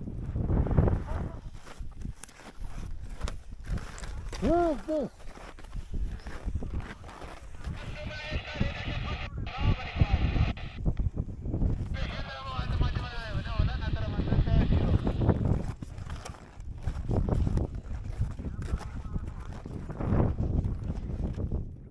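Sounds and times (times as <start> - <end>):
wind buffeting microphone: 0.0 - 21.9.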